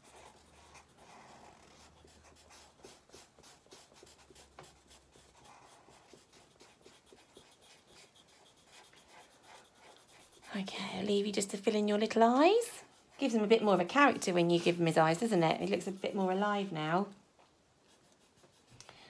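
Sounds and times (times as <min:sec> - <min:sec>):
marker pen scratching on paper: 0:00.0 - 0:17.0, 0:17.8 - 0:18.8.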